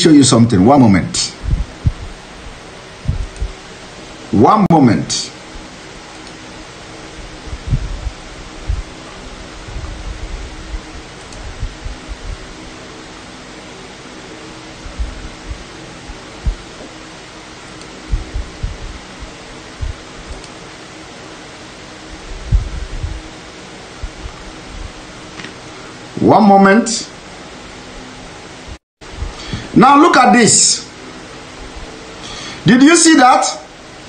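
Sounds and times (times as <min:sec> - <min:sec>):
faint hum: 0:00.0 - 0:34.0
steady background hiss: 0:00.0 - 0:34.0
soft low bumps and thumps: 0:01.4 - 0:02.2, 0:03.1 - 0:03.5, 0:07.5 - 0:08.9, 0:16.4 - 0:16.7, 0:18.1 - 0:20.1, 0:22.4 - 0:23.2.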